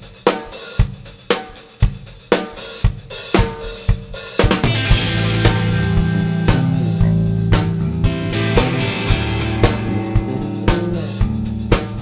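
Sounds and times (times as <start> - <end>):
cymbal and hi-hat: 0.0 - 12.0
drum fill: 0.0 - 12.0
drum kit beat: 0.0 - 12.0.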